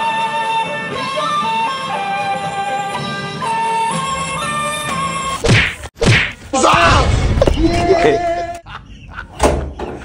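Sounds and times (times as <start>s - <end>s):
flute-like music: 0.0s - 5.4s
whack sound effect: 5.4s - 7.8s.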